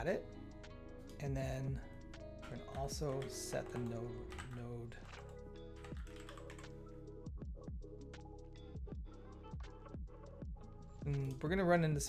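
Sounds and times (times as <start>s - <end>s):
lo-fi hip-hop music: 0.0s - 12.0s
computer keyboard typing: 2.4s - 6.8s.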